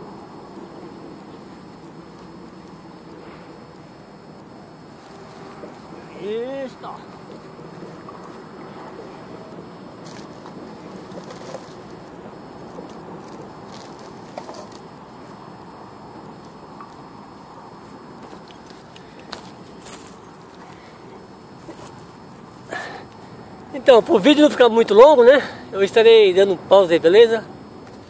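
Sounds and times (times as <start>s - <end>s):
steady background noise: 0.0s - 28.0s.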